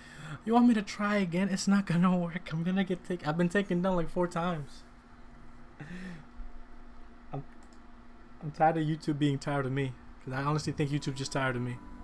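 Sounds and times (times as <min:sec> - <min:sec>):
steady faint hum: 0:00.0 - 0:12.0
faint clicks: 0:07.5 - 0:07.9.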